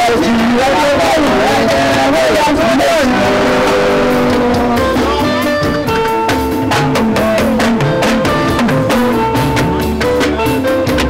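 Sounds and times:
held guitar notes: 0.0 - 11.0
sharp drum strikes: 0.1 - 11.0.

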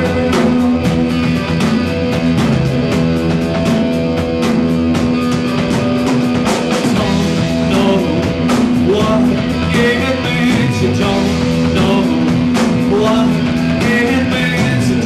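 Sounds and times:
man singing: 0.0 - 1.4, 6.8 - 15.0
drums: 0.0 - 15.0
electric guitar: 0.0 - 15.0
rock band playing live: 0.0 - 15.0.

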